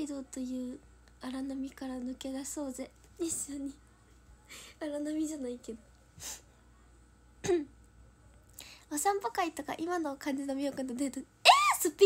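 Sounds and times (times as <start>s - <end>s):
woman clearing her throat: 7.4s - 7.8s.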